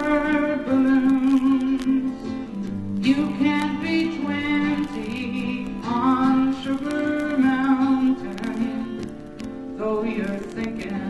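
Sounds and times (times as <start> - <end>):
acoustic guitar: 0.0 - 11.0.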